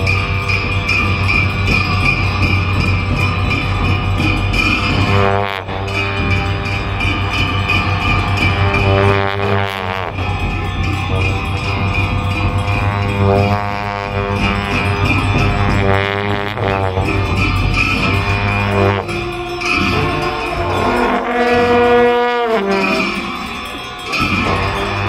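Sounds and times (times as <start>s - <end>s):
long horns droning: 0.0s - 25.0s
shawms playing wavering melody: 0.0s - 25.0s.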